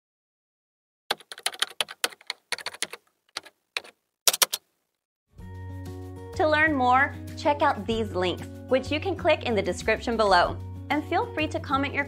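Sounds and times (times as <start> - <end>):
computer keyboard typing: 1.1 - 4.6.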